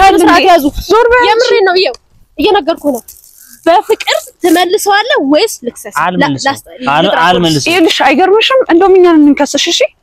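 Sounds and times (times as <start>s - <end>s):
woman speaking: 0.0s - 10.0s
faint high rustle: 2.1s - 4.8s.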